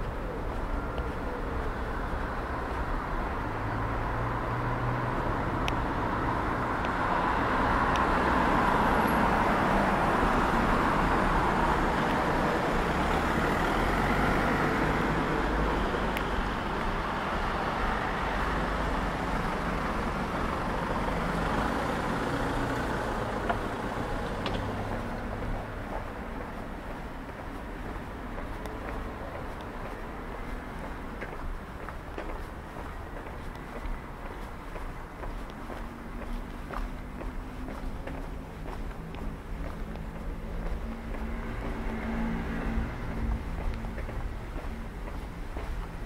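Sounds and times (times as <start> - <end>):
road traffic: 0.0 - 46.0.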